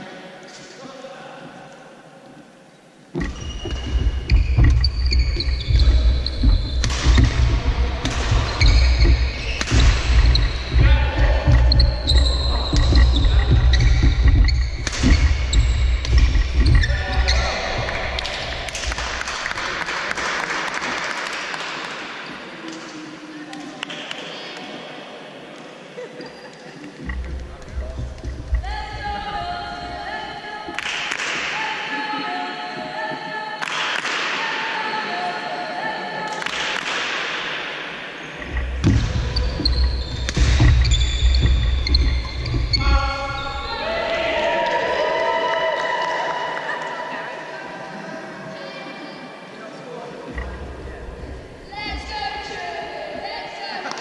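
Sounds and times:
crowd noise: 0:00.0 - 0:54.0
feet thudding on wooden court: 0:03.2 - 0:19.2, 0:38.4 - 0:43.8
racket hitting shuttlecock: 0:08.0 - 0:10.6, 0:40.2 - 0:41.1.

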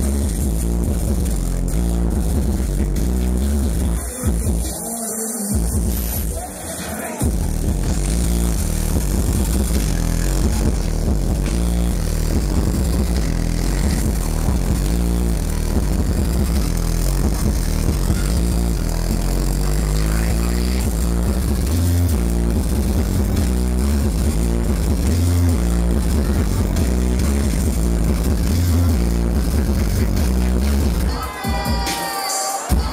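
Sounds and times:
electronic dance music: 0:00.0 - 0:32.9.

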